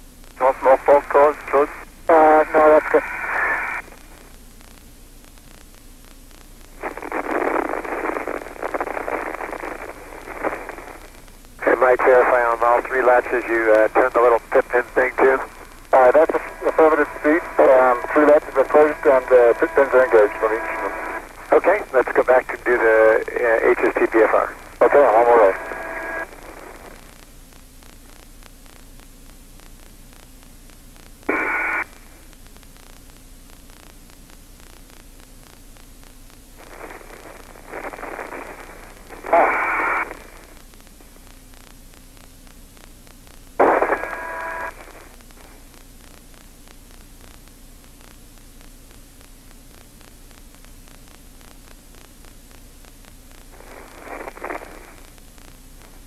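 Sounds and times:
low steady radio hiss: 0:00.0 - 0:56.0
voices over radio link: 0:00.4 - 0:03.9, 0:06.8 - 0:27.0, 0:37.7 - 0:40.6, 0:43.6 - 0:45.1
short bursts of radio noise: 0:00.4 - 0:04.3, 0:06.7 - 0:27.2, 0:31.3 - 0:32.3, 0:36.6 - 0:40.7, 0:43.6 - 0:45.8, 0:53.4 - 0:56.0.

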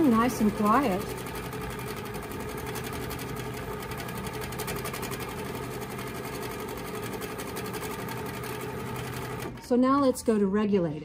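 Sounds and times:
quilting machine stitching: 0:00.0 - 0:10.2.

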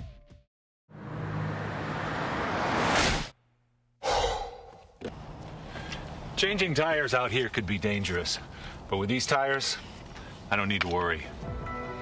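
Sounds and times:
car approaching: 0:00.9 - 0:03.0, 0:04.4 - 0:09.1.

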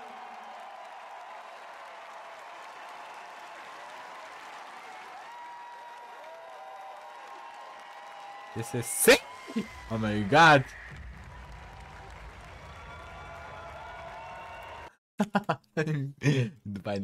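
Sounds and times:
crowd applauding: 0:00.0 - 0:15.0.

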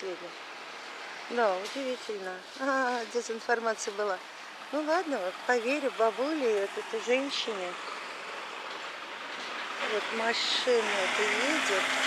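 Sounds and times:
truck passing close by: 0:04.6 - 0:12.0.

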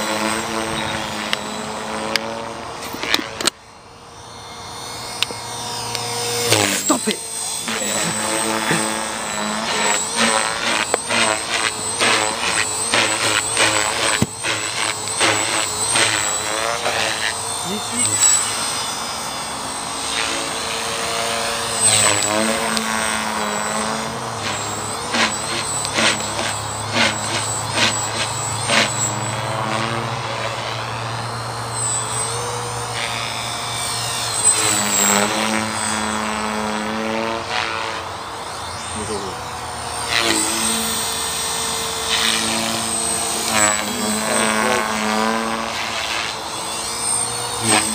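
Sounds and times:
rc helicopter motor whine: 0:00.0 - 0:47.9.

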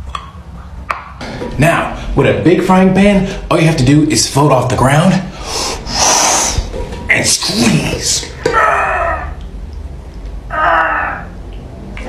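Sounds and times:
man hissing breath through teeth: 0:05.4 - 0:06.7.

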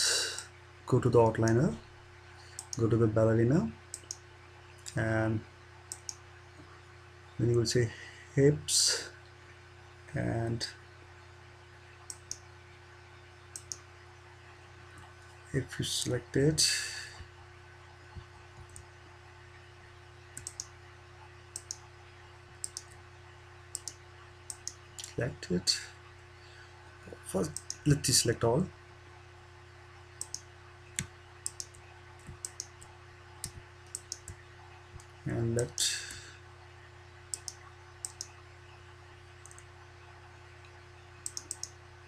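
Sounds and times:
faint electrical hum: 0:00.0 - 0:42.0
computer mouse clicks: 0:02.5 - 0:02.9, 0:03.9 - 0:04.2, 0:05.9 - 0:06.2, 0:12.1 - 0:12.4, 0:13.5 - 0:13.8, 0:18.1 - 0:18.9, 0:20.3 - 0:20.7, 0:21.5 - 0:21.8, 0:22.6 - 0:23.0, 0:23.7 - 0:25.2, 0:27.4 - 0:28.0, 0:30.2 - 0:34.4, 0:37.3 - 0:38.4, 0:39.4 - 0:39.7, 0:40.6 - 0:41.8
mouse button clicking: 0:41.2 - 0:41.7.

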